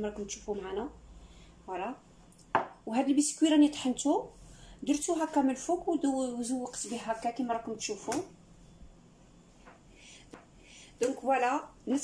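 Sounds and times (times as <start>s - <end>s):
glass cup knocking on worktop: 2.5s - 2.8s.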